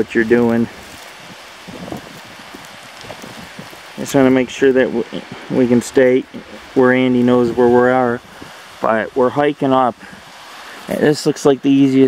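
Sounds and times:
outdoor hiss: 0.0 - 12.0.

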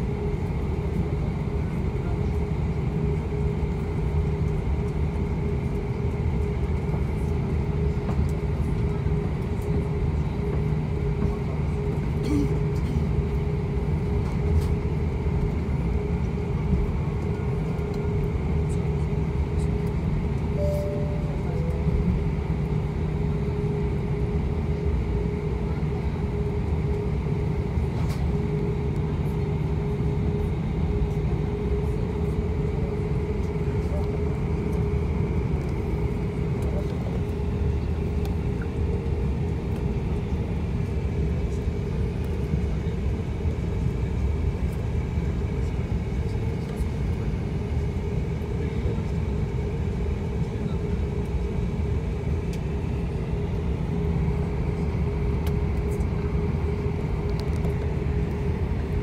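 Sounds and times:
aircraft cabin rumble and hum: 0.0 - 59.0.

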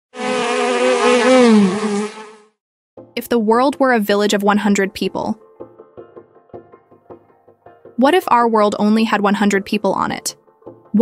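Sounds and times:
bee buzzing: 0.1 - 2.6.

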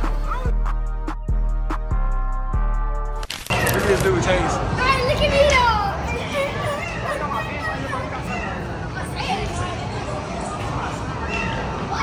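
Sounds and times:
children yelling on a ride: 4.6 - 12.0.

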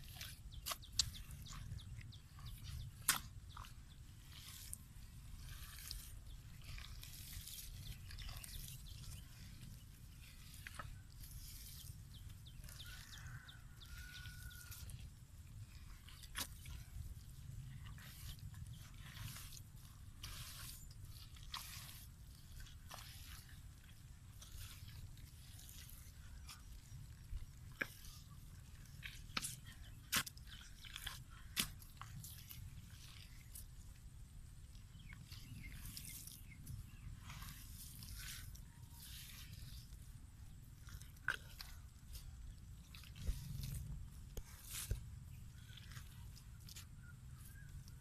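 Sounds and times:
hands digging in wet mud: 0.0 - 48.0.

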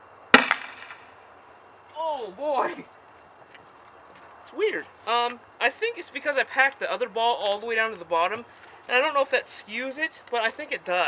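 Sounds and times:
grenade launcher bang: 0.4 - 1.1
faint crack: 0.4 - 1.2.

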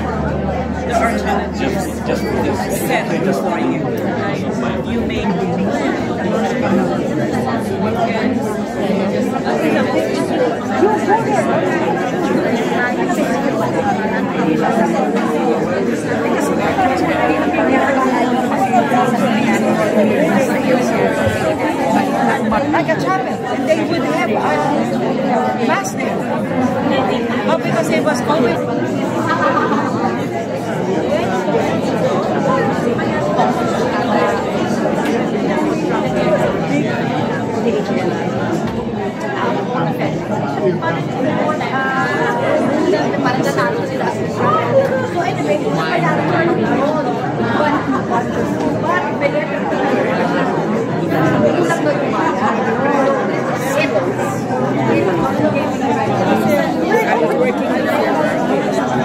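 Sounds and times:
hubbub of overlapping conversations: 0.0 - 59.0.

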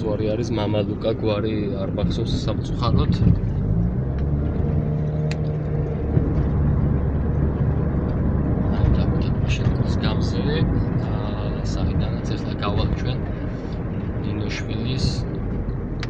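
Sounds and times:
car engine and road hum: 0.0 - 16.0.

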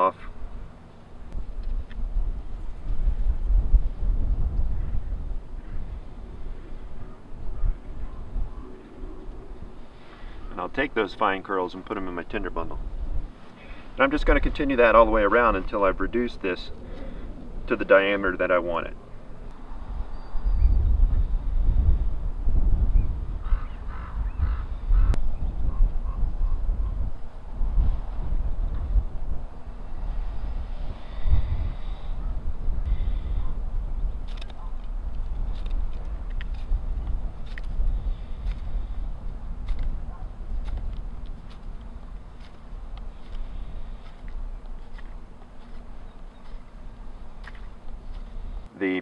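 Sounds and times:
wind on microphone: 0.0 - 10.5, 12.6 - 18.0, 19.0 - 48.7
bird calling: 23.4 - 27.0, 43.1 - 48.4.

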